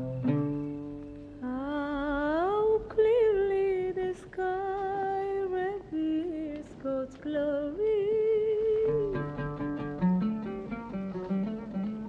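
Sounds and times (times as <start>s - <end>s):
plucked string note: 0.0s - 1.4s.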